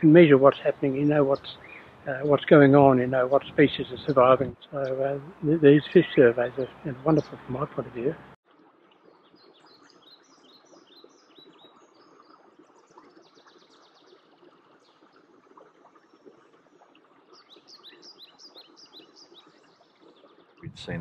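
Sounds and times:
birds chirping: 0.0 - 8.4
faint steady background noise: 0.0 - 21.0.

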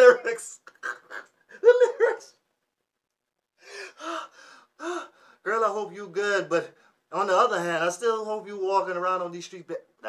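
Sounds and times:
man laughing hard: 0.6 - 2.3.

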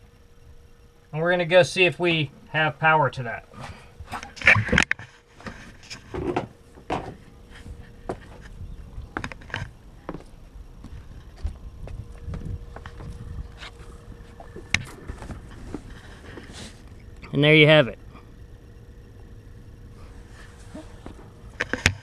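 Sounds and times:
footsteps on deck: 6.2 - 16.5.

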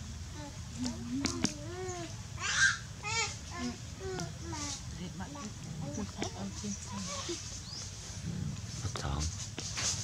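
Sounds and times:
animal squealing calls: 2.4 - 3.3.

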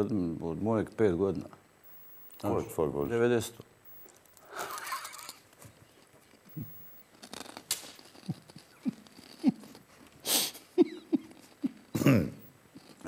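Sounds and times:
men laughing quietly: 4.4 - 5.6, 8.3 - 13.0.

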